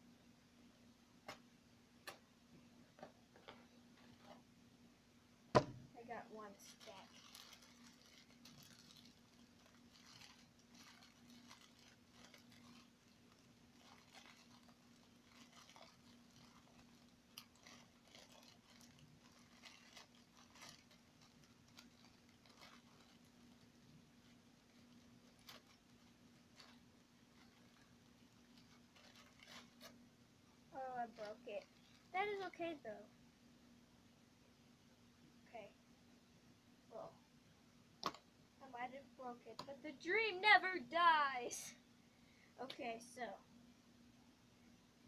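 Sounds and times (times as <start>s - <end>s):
small clicks and crackles: 6.2s - 30.0s, 30.8s - 32.8s
plastic wrapper crinkling: 6.4s - 30.1s, 30.8s - 32.7s.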